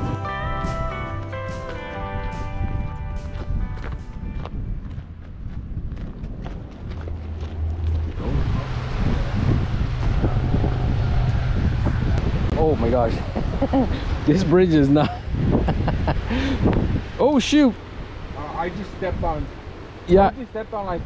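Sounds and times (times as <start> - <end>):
plucked guitar music: 0.0 - 4.4
wind buffeting microphone: 2.1 - 21.0
voices: 12.5 - 15.2, 16.3 - 21.0.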